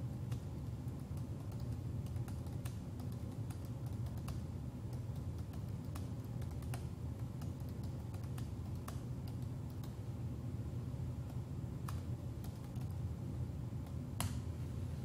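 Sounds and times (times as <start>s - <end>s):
steady low hum: 0.0s - 15.0s
computer keyboard keys tapping: 0.2s - 10.0s, 11.2s - 13.1s.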